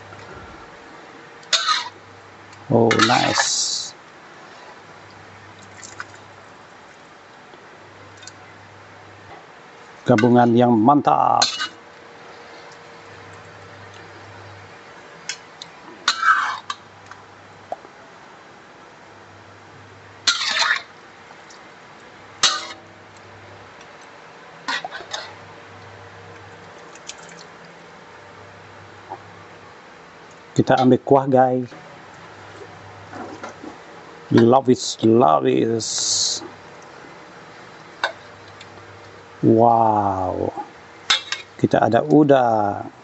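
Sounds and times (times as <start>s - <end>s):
low steady hum: 0.0s - 43.0s
metal spatula scraping a wok: 1.5s - 2.0s, 16.1s - 16.7s, 20.3s - 20.9s.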